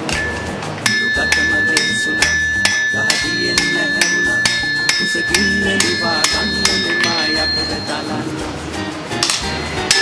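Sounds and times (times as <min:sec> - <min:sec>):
hammer striking blade on anvil: 0:00.0 - 0:08.1, 0:09.2 - 0:10.0.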